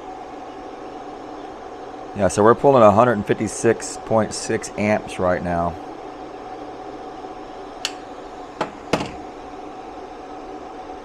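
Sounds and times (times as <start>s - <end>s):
machine hum with held tone: 0.0s - 11.0s.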